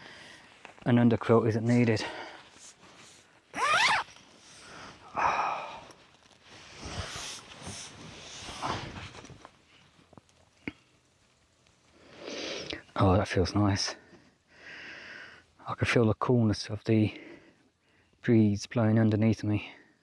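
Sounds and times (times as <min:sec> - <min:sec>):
nylon hammock rustling: 0:00.1 - 0:12.7.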